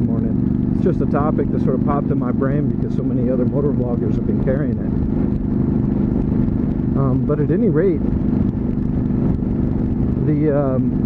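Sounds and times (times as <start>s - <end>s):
motorcycle engine cruising: 0.0s - 11.0s
road noise: 0.0s - 11.0s.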